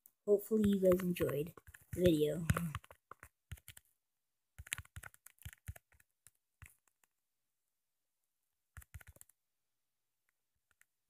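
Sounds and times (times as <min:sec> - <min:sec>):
fingertip tapping touchscreen: 0:02.0 - 0:03.8.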